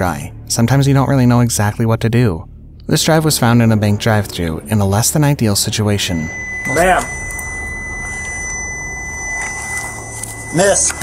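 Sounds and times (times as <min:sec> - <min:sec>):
low steady hum: 0:00.0 - 0:11.0
high-pitched electronic warning tone: 0:05.1 - 0:11.0.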